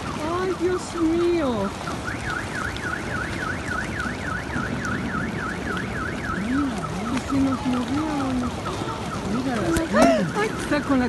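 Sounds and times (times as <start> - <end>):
car alarm warbling: 0.0 - 11.0.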